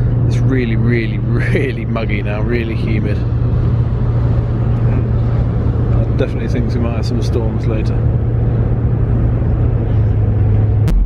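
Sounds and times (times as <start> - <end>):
ferry engines humming: 0.0 - 11.0.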